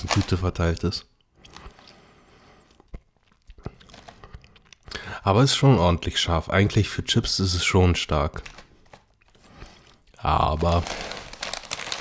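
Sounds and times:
person chewing chips: 1.3 - 5.0, 8.9 - 12.0
mouth clicks and smacks: 2.7 - 5.1.

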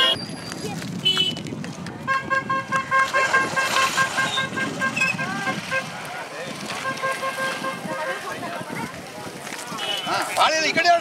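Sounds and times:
vehicle horn short beeps: 0.0 - 0.4, 2.1 - 5.9, 6.8 - 8.2, 9.8 - 10.3
crowd chatter: 0.0 - 11.0.

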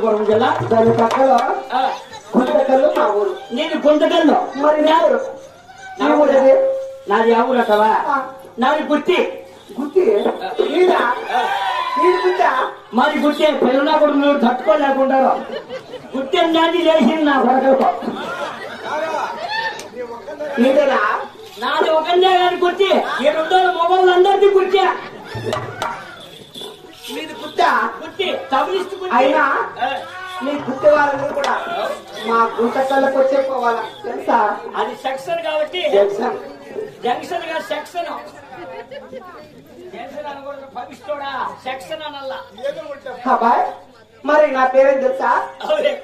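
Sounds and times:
actors speaking into microphones: 0.0 - 46.0.

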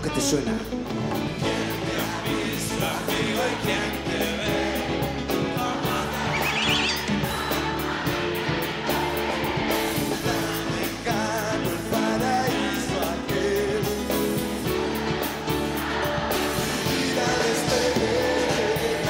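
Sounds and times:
live rock-pop band: 0.0 - 19.0
male voices singing a duet: 1.4 - 7.6, 10.0 - 14.6, 16.6 - 19.0
high wavering cry: 6.3 - 7.4.

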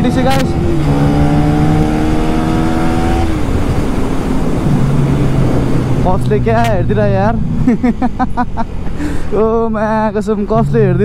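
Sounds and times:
man talking: 0.0 - 0.6, 6.0 - 7.5, 9.3 - 11.0
wind noise: 0.0 - 9.3
motorcycle engine rumble: 0.0 - 11.0.

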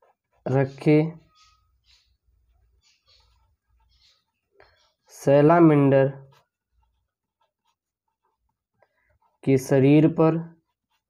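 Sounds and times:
marker pen writing on paper: 0.0 - 5.1, 6.2 - 9.4, 10.6 - 11.0.

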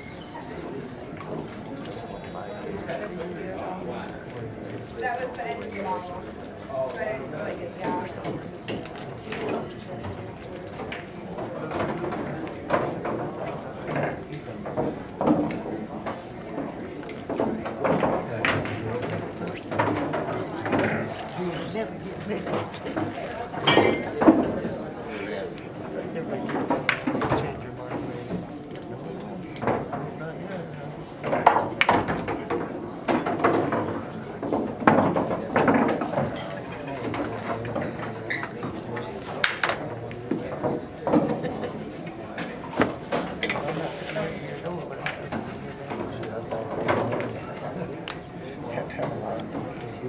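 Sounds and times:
people chattering: 0.0 - 50.0
pool balls clicking: 10.9 - 25.0, 26.4 - 28.7, 31.2 - 41.8.

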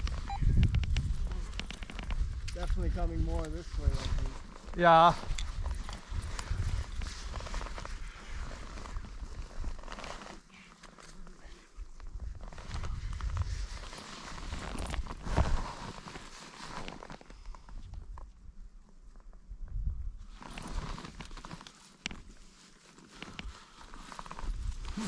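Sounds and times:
wind rumble on microphone: 0.0 - 9.9, 11.8 - 15.8, 19.4 - 20.4, 24.4 - 25.0
harness and lines rustling: 0.0 - 19.4, 20.2 - 25.0.

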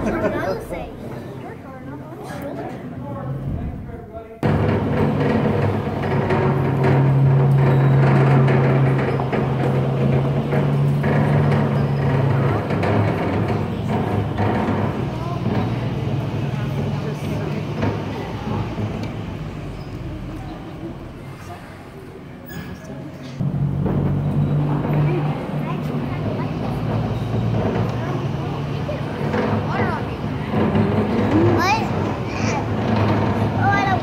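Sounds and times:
tram engine droning: 0.0 - 2.1, 3.0 - 34.0.

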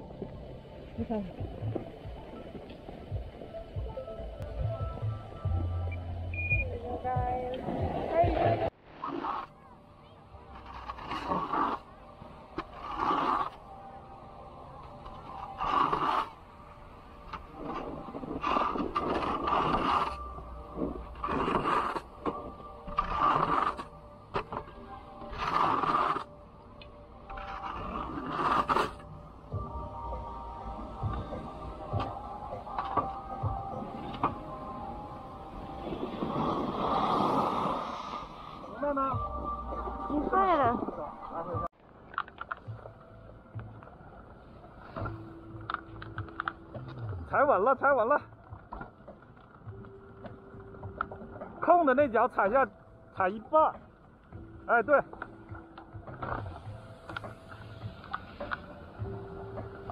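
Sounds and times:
edges scraping packed snow: 9.0 - 9.6, 10.5 - 12.0, 12.6 - 13.6, 15.2 - 16.4, 17.6 - 24.5, 25.2 - 26.3, 27.4 - 29.0, 35.9 - 38.8
air rushing past: 35.8 - 38.7.

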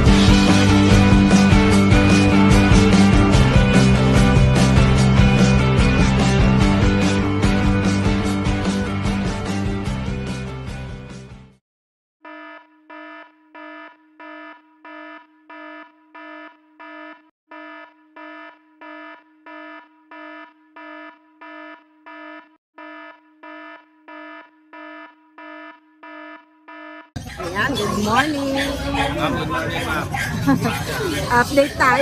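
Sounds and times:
buzzy electronic alarm beeps: 12.2 - 29.8
outdoor crowd noise: 27.2 - 32.0
man talking: 29.0 - 31.2.

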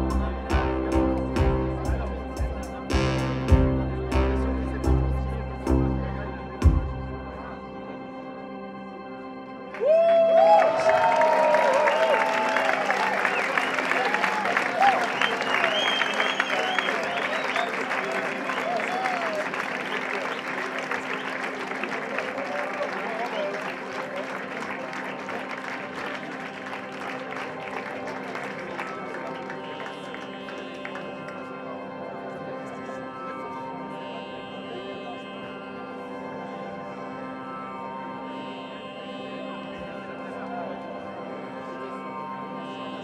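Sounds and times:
synthesizer drone: 0.0 - 43.0
audience applause and cheering: 9.7 - 31.4.

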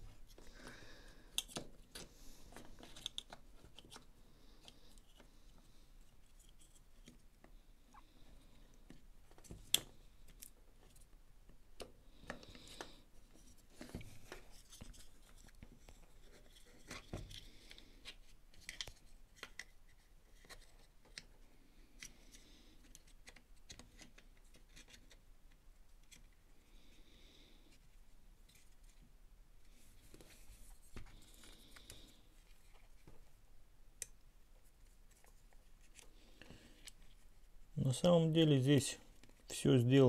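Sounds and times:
plastic parts clicking and rustling: 1.3 - 5.3.

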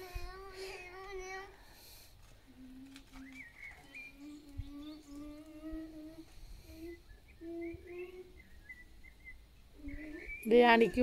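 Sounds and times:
person humming softly: 2.5 - 8.5, 9.8 - 10.4
faint high chirps: 2.5 - 11.0.

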